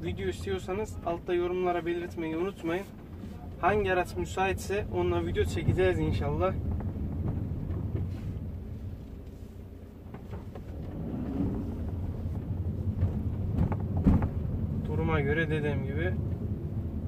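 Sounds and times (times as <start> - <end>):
car engine and road rumble: 0.0 - 17.0.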